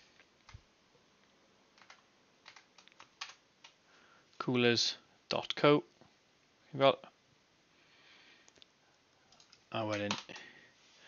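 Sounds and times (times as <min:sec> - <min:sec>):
computer keyboard clicks: 0:01.8 - 0:03.8, 0:09.3 - 0:10.5.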